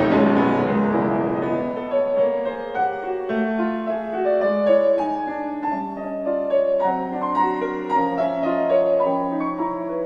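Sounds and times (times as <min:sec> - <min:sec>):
solo piano playing: 0:00.0 - 0:10.0.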